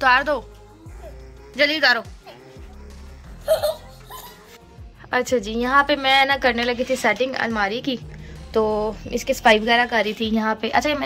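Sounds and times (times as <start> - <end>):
background music: 0.0 - 11.0
small child giggling: 3.4 - 4.5.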